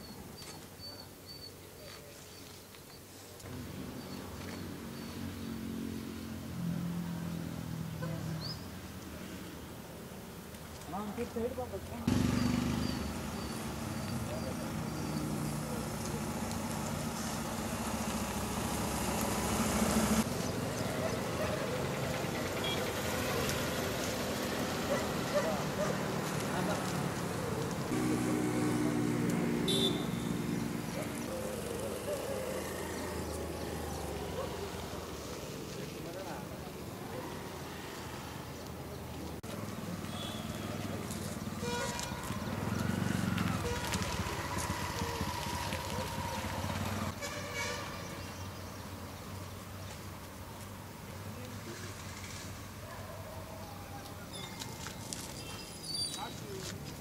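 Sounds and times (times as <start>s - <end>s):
traffic hum: 0.0s - 57.0s
motor vehicle running: 11.7s - 36.6s, 39.0s - 47.9s
people talking: 25.3s - 27.1s
held horn-like tone: 29.6s - 30.6s.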